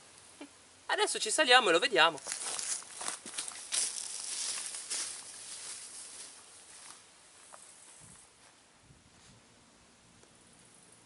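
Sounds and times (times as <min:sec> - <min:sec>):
grass rustling: 0:00.0 - 0:09.6
footsteps on dry grass and stones: 0:02.1 - 0:08.6.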